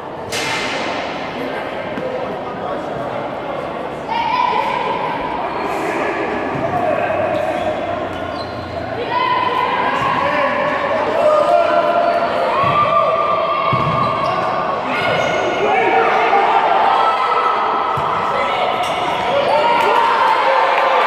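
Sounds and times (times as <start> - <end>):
voices shouting in echoing hall: 0.0 - 21.0.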